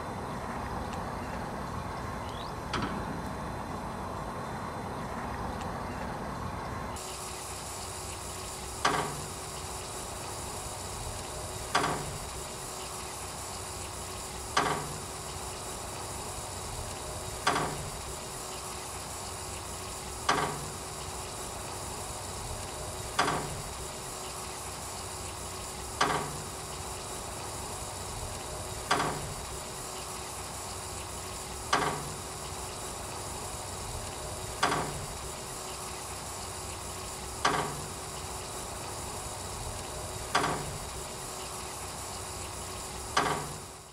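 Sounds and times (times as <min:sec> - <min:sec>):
faint hum: 0:00.0 - 0:43.9.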